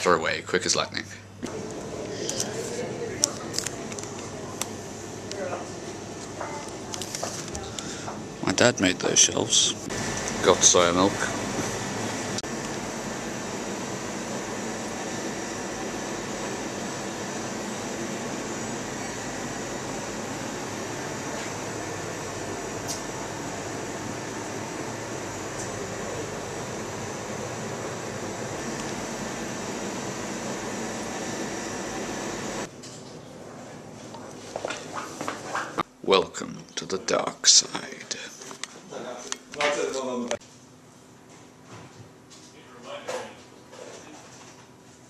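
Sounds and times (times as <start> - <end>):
ventilation hum and hiss: 0.0 - 45.0.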